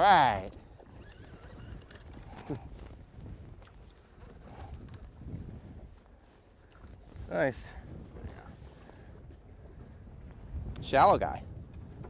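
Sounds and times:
choppy water: 0.0 - 12.0
wind: 0.0 - 12.0.

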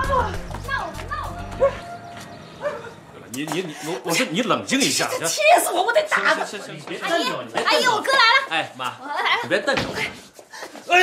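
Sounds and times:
background music: 0.0 - 3.2
dog barking: 2.6 - 3.0.

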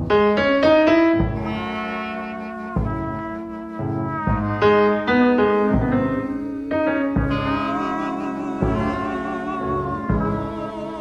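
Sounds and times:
blues piano run: 0.0 - 11.0
low bass notes: 0.0 - 11.0.

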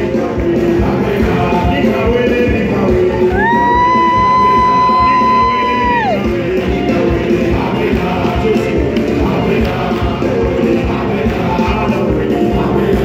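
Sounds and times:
crowd voices: 0.0 - 13.0
live church music with singing: 0.0 - 13.0.

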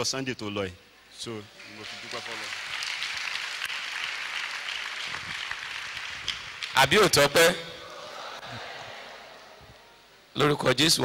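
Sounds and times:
congregation applauding: 1.5 - 9.2.

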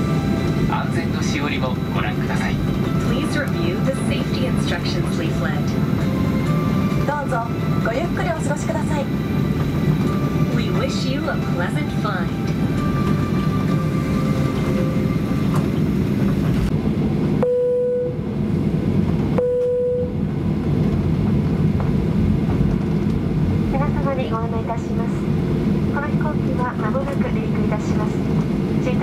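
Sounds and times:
aircraft cabin rumble: 0.0 - 29.0.

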